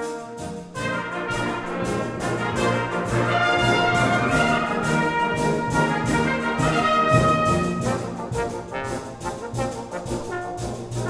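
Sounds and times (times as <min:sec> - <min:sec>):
solo trombone: 0:00.0 - 0:11.0
wind band playing: 0:00.0 - 0:11.0.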